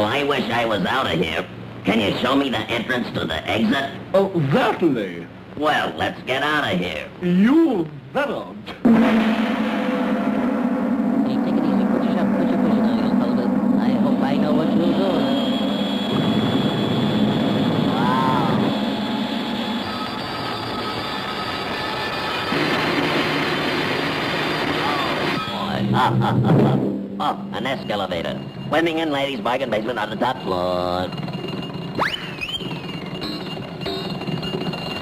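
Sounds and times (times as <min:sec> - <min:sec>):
held high tone: 0:08.9 - 0:22.6, 0:24.4 - 0:26.1, 0:26.9 - 0:35.0.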